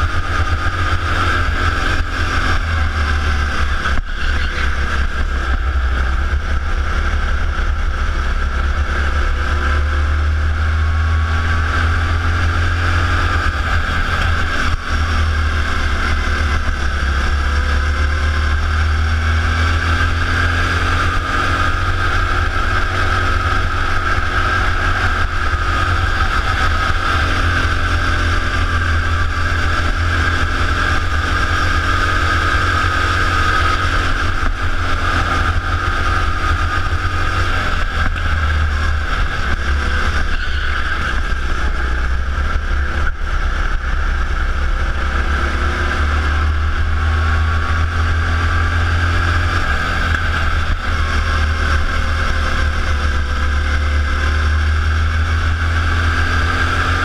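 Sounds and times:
deep steady rumble: 0.0s - 57.0s
go-kart engine buzzing: 0.0s - 57.0s.

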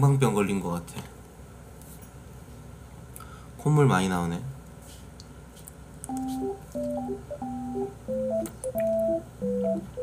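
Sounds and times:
simple electronic beep-like tune: 6.1s - 10.0s.

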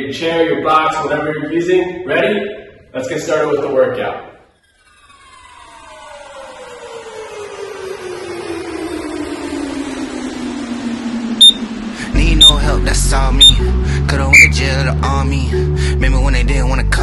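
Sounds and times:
descending pitch sweep: 4.6s - 13.6s, 14.2s - 14.7s
short high timer beeps: 11.4s - 11.6s, 12.4s - 12.6s, 13.4s - 13.6s, 14.3s - 14.6s
hip-hop track with heavy bass: 11.4s - 17.0s.

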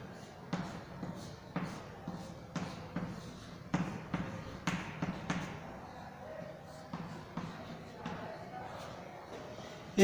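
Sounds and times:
chalk tapping on blackboard: 0.0s - 9.0s.

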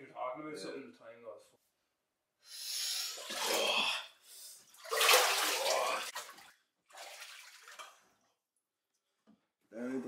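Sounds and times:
water splashing in a tub: 3.2s - 3.9s, 4.7s - 8.3s.

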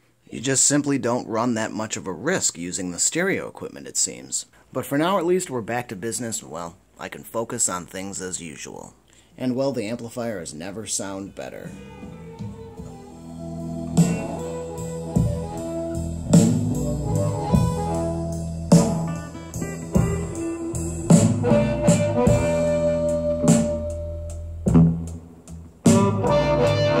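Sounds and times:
music through speakers: 11.9s - 27.0s.

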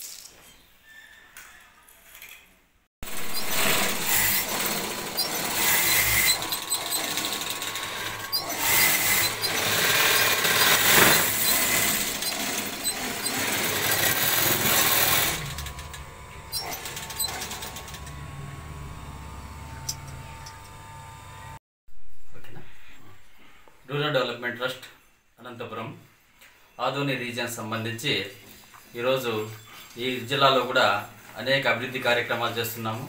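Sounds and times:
sewing machines clattering: 3.0s - 18.2s.

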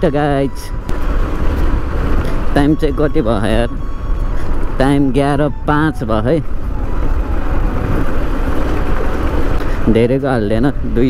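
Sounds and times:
motorcycle engine and road noise: 0.0s - 11.0s
wind rushing over microphone: 0.0s - 11.0s
person speaking: 4.6s - 6.5s.

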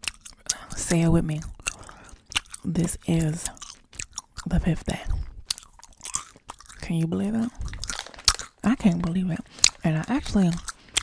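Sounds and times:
gum chewing clicks and smacks: 0.0s - 11.0s
woman speaking: 0.5s - 1.6s, 2.6s - 3.6s, 4.4s - 5.3s, 6.8s - 7.7s, 8.6s - 10.7s.

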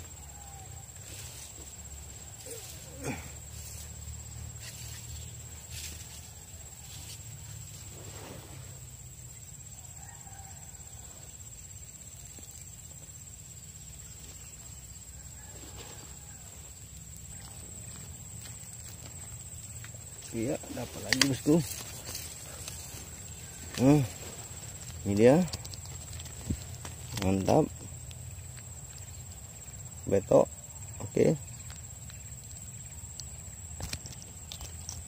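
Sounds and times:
insects droning: 0.0s - 35.0s
faint clicks and rustles: 15.4s - 30.0s, 30.8s - 35.0s.

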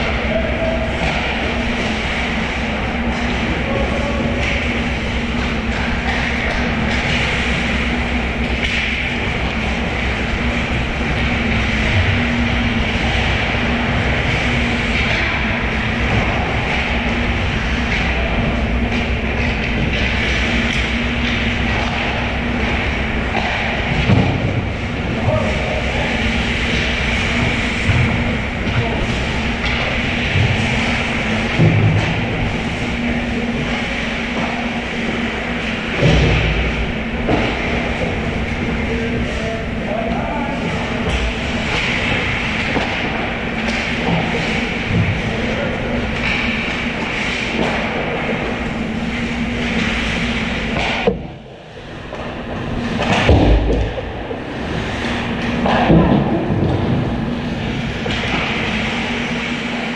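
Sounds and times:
constant low hum: 0.0s - 59.9s
skating and rink noise rumble: 0.0s - 59.9s.

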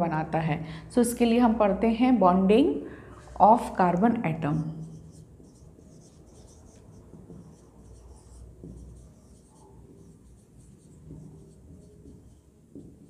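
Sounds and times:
marker pen scratching on whiteboard: 4.6s - 13.0s.

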